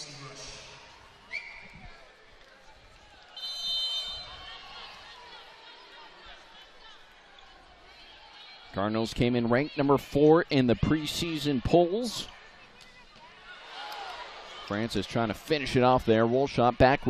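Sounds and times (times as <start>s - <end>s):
crowd murmur: 0.0s - 8.8s, 9.4s - 16.8s
referee's whistle: 1.3s - 1.8s, 3.3s - 4.6s.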